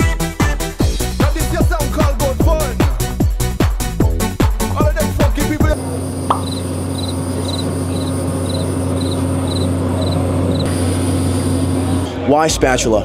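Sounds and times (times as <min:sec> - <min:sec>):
low machine hum: 0:05.7 - 0:12.4
insect chirping: 0:06.3 - 0:10.7.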